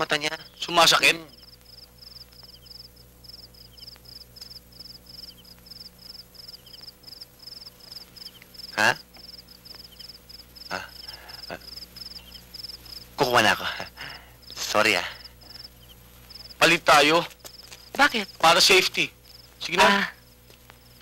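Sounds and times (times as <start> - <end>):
cricket chirping: 0.0 - 21.0
low steady hum: 0.0 - 21.0
fainter lower chirps: 0.2 - 13.3, 15.2 - 16.6.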